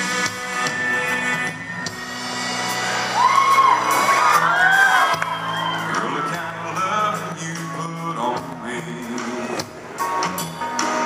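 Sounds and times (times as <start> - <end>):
crowd calling out: 0.0 - 7.0
country band over loudspeakers: 0.0 - 11.0.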